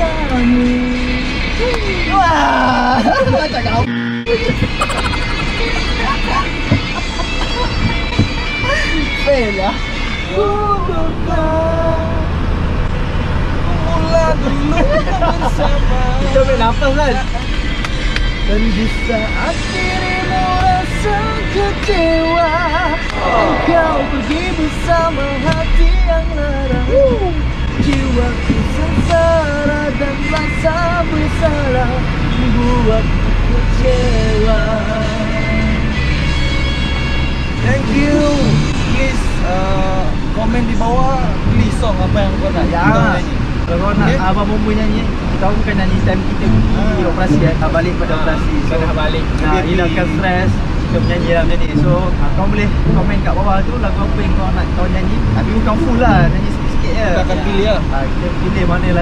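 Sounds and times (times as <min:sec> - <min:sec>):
men laughing: 0:02.8 - 0:03.6, 0:04.4 - 0:08.9, 0:14.4 - 0:16.1
fire engine low rumble: 0:03.8 - 0:59.0
sung melody: 0:03.9 - 0:11.9, 0:35.1 - 0:39.4, 0:45.8 - 0:48.1.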